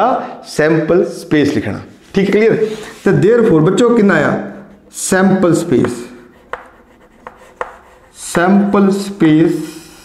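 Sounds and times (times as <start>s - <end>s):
chalk tapping on a board: 5.6s - 8.6s
chalk scratching on a blackboard: 5.6s - 10.0s.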